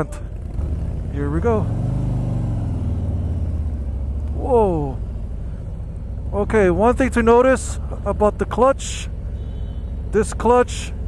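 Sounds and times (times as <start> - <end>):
motorcycle engine pulling away: 0.3 - 5.0.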